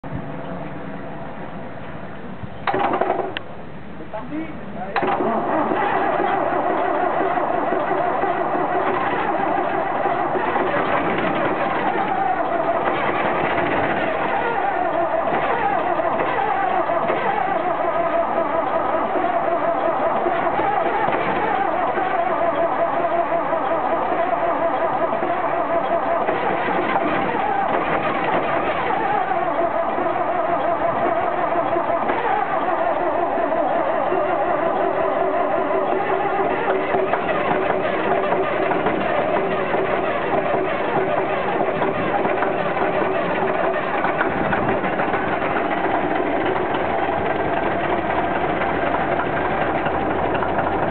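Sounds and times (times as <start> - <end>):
diesel truck engine running: 0.0 - 50.9.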